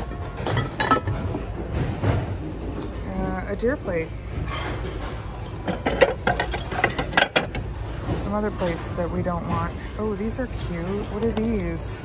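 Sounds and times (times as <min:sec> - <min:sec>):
ceramic plates clinking: 0:00.2 - 0:01.3, 0:05.4 - 0:07.6.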